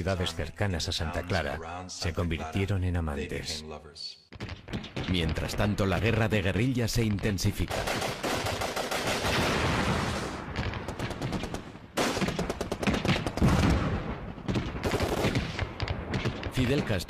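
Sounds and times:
automatic gunfire: 7.7 - 16.4.

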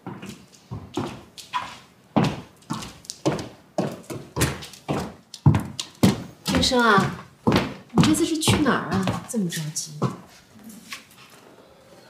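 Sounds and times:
footsteps on wooden floor: 0.0 - 11.3.

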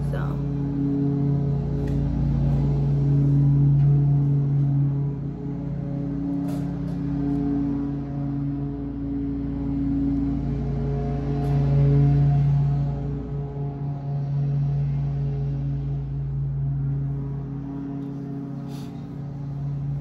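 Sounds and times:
slow sustained low chords: 0.0 - 20.0.

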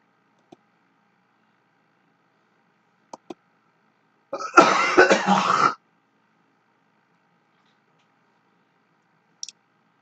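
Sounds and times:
man coughing: 4.4 - 5.8.

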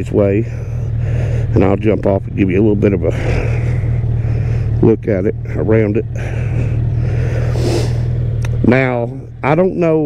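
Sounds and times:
motorcycle engine idling: 0.0 - 10.0
brief hiss: 7.6 - 8.0.

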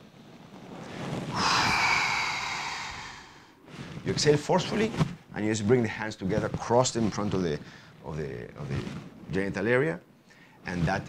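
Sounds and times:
man exhaling forcefully: 1.3 - 3.6.

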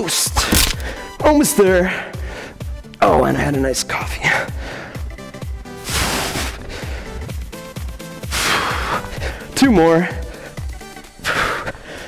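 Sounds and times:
background music with steady beat: 0.0 - 12.0.

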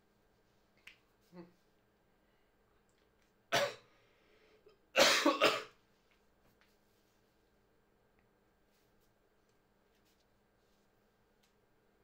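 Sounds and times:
man coughing: 5.0 - 5.7.

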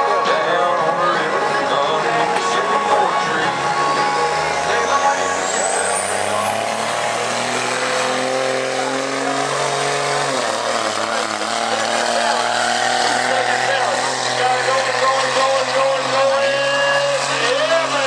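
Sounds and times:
high whine: 0.0 - 17.8
truck engine at full throttle: 0.0 - 18.0.

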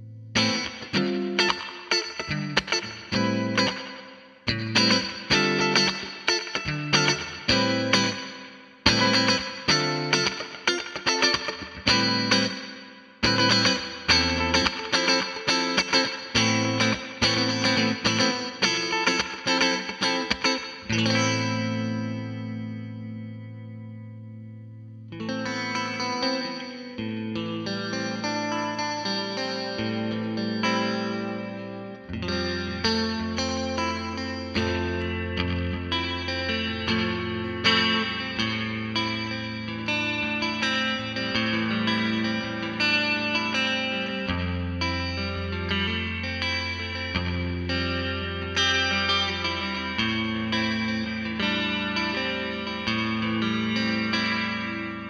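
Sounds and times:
electric guitar with reverb: 0.0 - 55.0.

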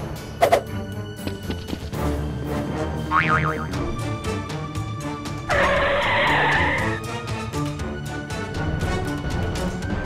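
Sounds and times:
background music: 0.0 - 10.0
wobbling warbling tone: 3.1 - 3.8.

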